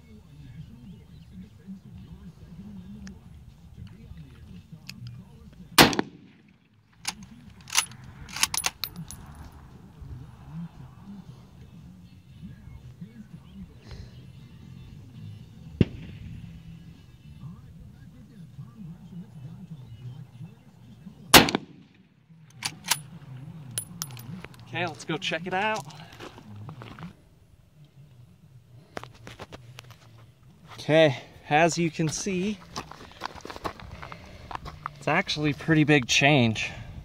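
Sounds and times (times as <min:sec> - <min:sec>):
rifle shots: 0:05.8 - 0:09.1, 0:15.8 - 0:16.6, 0:21.3 - 0:22.0
rifle bolt clacking: 0:05.8 - 0:09.3, 0:21.4 - 0:21.9, 0:22.5 - 0:24.6.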